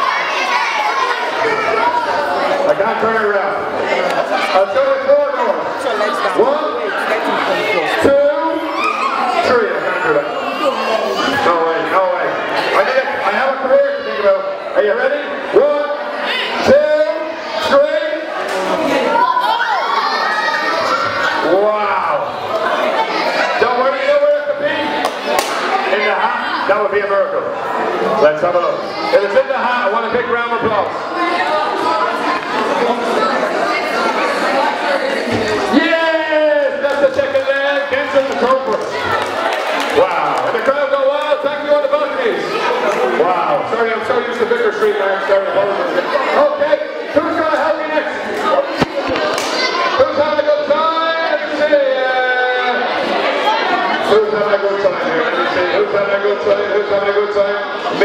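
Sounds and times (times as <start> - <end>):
children shouting and cheering: 0.0 - 5.0, 6.0 - 14.5, 16.2 - 26.9, 31.0 - 43.3, 47.7 - 54.0
man speaking indistinctly: 2.6 - 18.5, 23.5 - 25.0, 35.4 - 39.0, 40.0 - 53.0.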